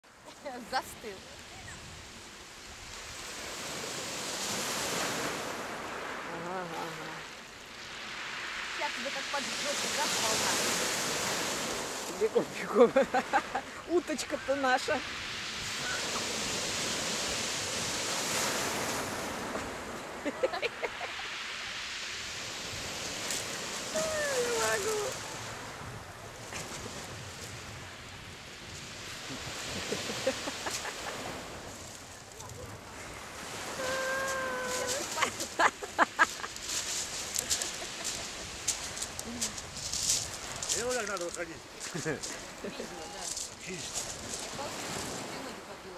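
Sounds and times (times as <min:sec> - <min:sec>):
sea wave surging up shore: 0:00.1 - 0:45.9
short voice: 0:33.8 - 0:35.2.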